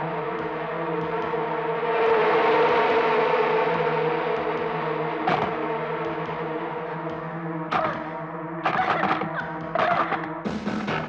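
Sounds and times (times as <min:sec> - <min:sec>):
eerie horror drone: 0:00.0 - 0:11.0.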